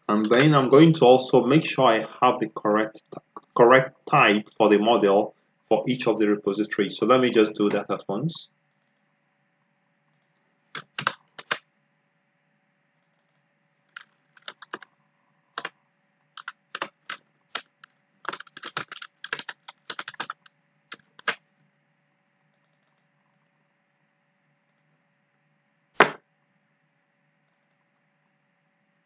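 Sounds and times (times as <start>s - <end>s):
faint steady hum: 0.0s - 29.0s
keyboard typing: 0.1s - 0.6s, 8.7s - 9.1s, 10.1s - 11.7s, 13.0s - 21.4s, 22.5s - 23.5s.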